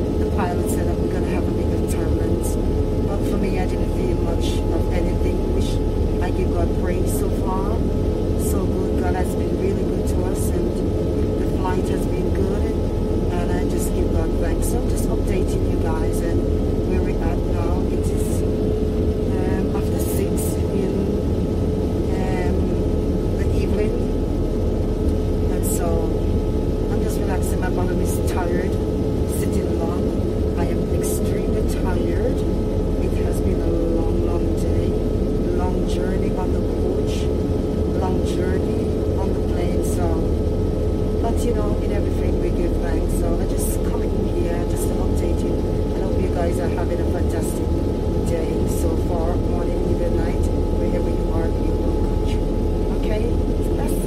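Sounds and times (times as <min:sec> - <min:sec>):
airliner cabin drone: 0:00.0 - 0:54.0.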